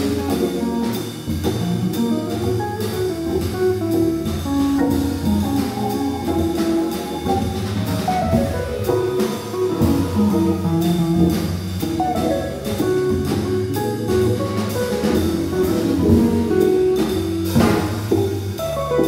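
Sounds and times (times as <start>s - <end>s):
drum kit with ride cymbal: 0.0s - 19.0s
organ playing: 1.8s - 19.0s.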